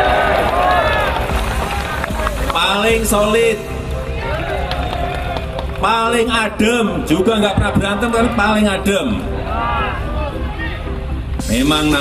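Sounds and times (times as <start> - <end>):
background music: 0.0 - 12.0
man speaking into a microphone: 11.4 - 12.0.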